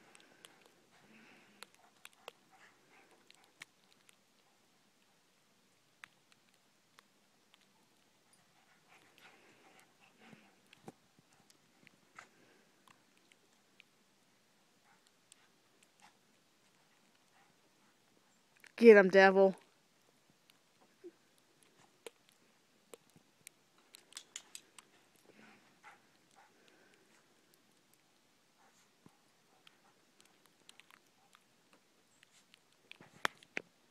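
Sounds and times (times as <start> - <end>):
small clicks: 21.6 - 25.3.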